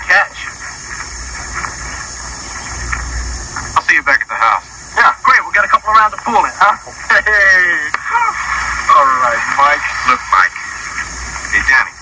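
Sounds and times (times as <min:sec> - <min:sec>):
tv soundtrack hiss and rumble: 0:00.0 - 0:12.0.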